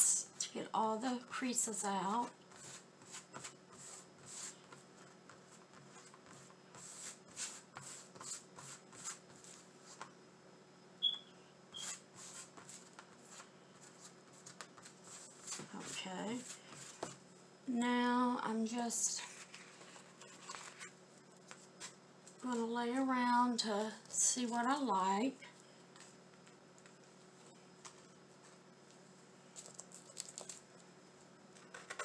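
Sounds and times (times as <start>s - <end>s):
hands rubbing plastic on canvas: 2.5s - 10.1s, 11.8s - 17.2s.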